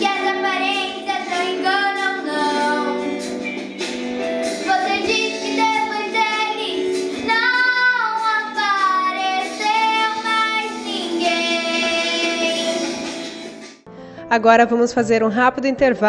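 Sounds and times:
girl singing: 0.0s - 3.3s, 4.4s - 12.9s.

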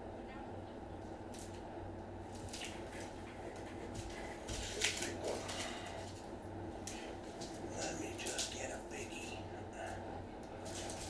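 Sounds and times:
faint low hum: 0.0s - 11.0s
plastic sleeve crinkling: 4.0s - 5.8s.

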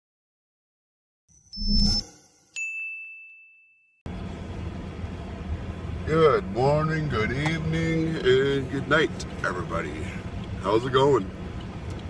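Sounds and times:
high electronic ding: 1.3s - 3.8s
car interior rumble while driving: 4.1s - 12.0s.

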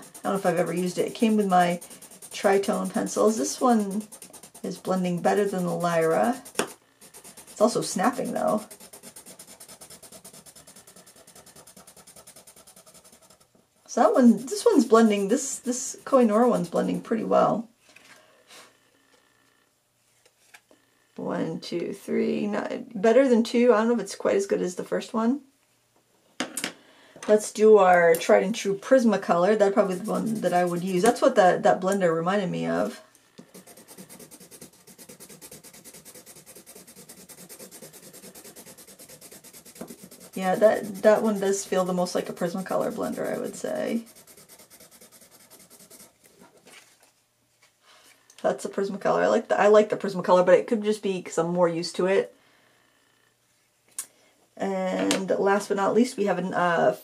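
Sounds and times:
pencil scratching on paper: 0.0s - 17.0s, 29.6s - 31.3s, 32.7s - 46.4s.

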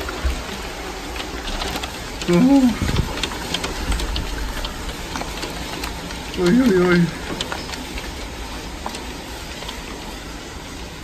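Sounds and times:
hailstones ticking on hard surfaces: 0.0s - 11.0s
heavy rain hiss: 0.0s - 11.0s.

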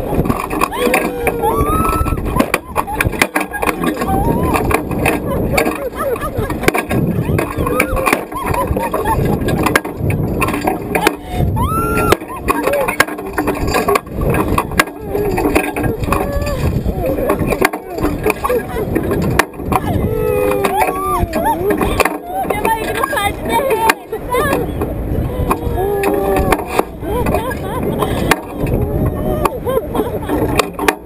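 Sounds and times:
wind buffeting microphone: 0.0s - 31.0s
woman and man laughing: 0.0s - 31.0s.

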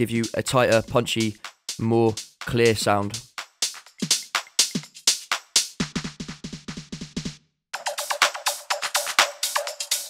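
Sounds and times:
electronic drum loop: 0.0s - 10.0s.

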